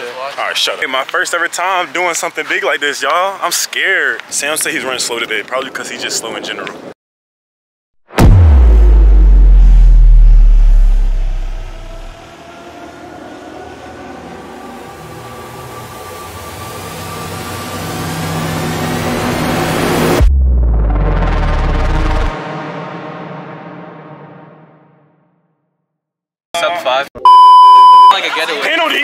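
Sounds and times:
deep bass hit: 8.1s - 12.2s, 20.0s - 25.3s
rising riser: 8.2s - 25.3s.

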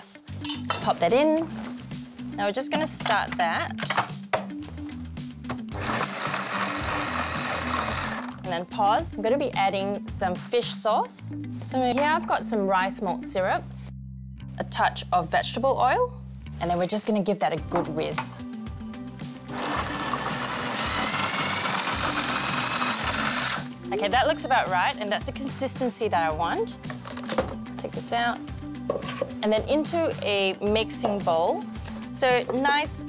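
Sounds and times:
background music with bass line: 0.0s - 17.0s, 17.6s - 33.0s
food processor running: 5.8s - 8.4s, 19.5s - 23.7s.

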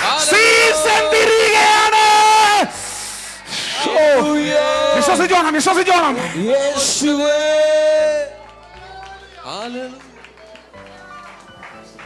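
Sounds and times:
man shouting a high note: 0.0s - 2.8s, 3.8s - 6.0s.

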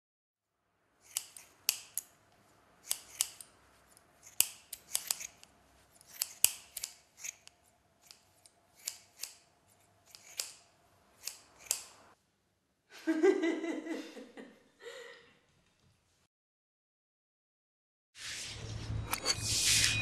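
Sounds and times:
scissors snipping hair: 1.0s - 2.2s, 2.8s - 12.0s.

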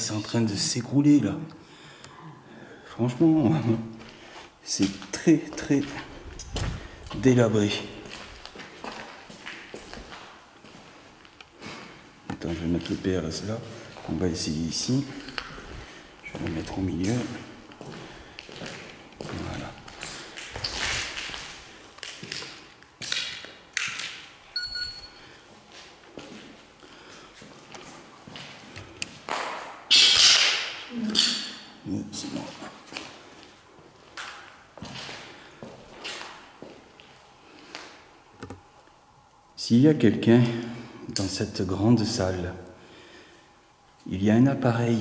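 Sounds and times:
footsteps crunching on debris: 4.0s - 14.2s, 15.0s - 24.4s, 32.8s - 38.0s.

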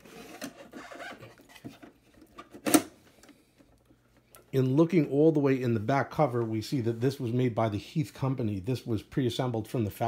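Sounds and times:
hands scraping and rubbing case: 0.0s - 2.0s.

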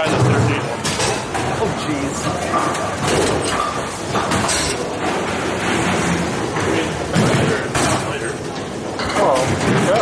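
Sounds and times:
bowling pins knocking and clattering: 0.0s - 10.0s
rolling and machinery noise: 0.0s - 10.0s.

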